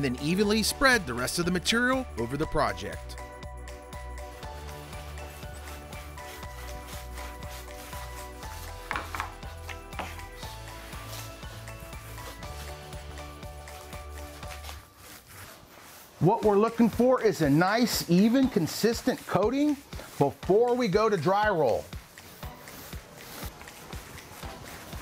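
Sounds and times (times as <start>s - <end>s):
background music with bass line: 0.0s - 15.4s
paint roller rubbing: 0.2s - 25.0s.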